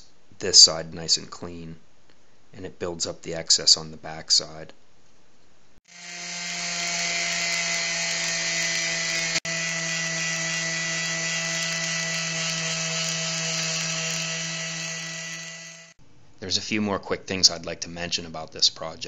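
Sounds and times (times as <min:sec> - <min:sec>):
electric palm sander running: 0:05.9 - 0:16.0.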